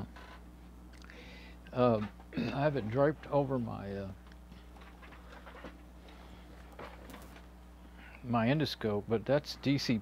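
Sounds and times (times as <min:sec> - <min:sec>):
low electrical buzz: 0:00.0 - 0:10.0.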